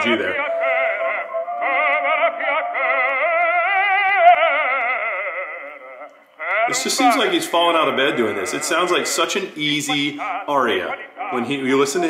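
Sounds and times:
operatic baritone singing: 0.0s - 12.0s.

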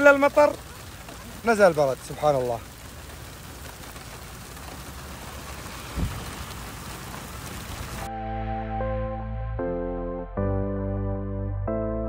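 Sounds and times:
rain and hail on dirt: 0.0s - 8.1s
low thump: 5.9s - 6.3s
background music with held chords: 8.1s - 12.0s.

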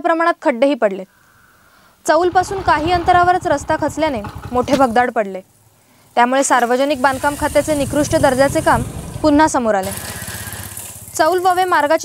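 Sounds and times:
narrator speaking: 2.1s - 5.4s, 6.2s - 9.9s.

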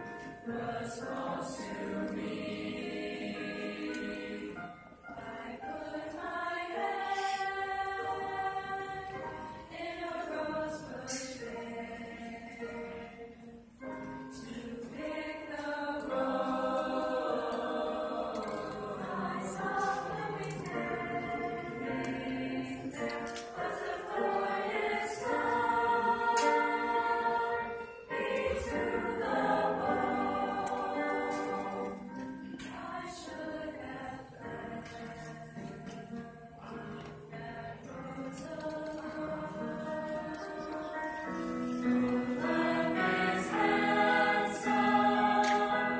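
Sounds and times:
choir singing in harmony: 0.0s - 45.9s.

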